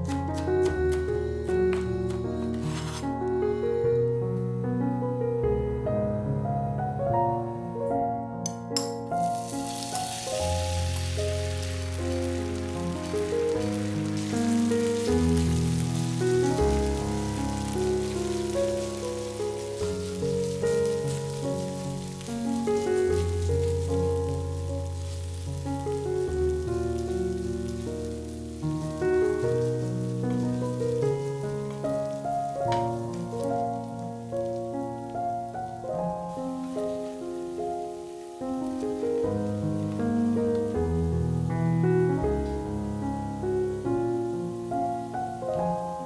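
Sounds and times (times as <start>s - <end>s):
piano music: 0.0s - 46.0s
potato sizzling in hot oil: 8.9s - 46.0s.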